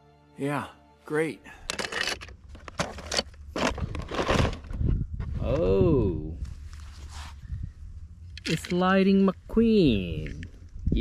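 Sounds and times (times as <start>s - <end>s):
handling rustles and clicks: 1.6s - 5.3s, 8.2s - 9.0s
wind buffeting microphone: 3.8s - 8.4s, 9.4s - 11.0s.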